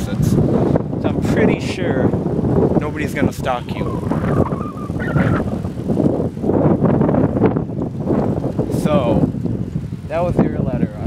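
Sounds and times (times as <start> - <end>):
wind buffeting microphone: 0.0 - 11.0.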